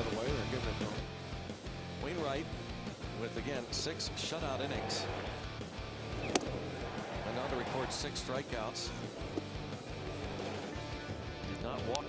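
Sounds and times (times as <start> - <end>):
guitar music in stadium: 0.0 - 12.0
stadium ambience: 3.3 - 11.2.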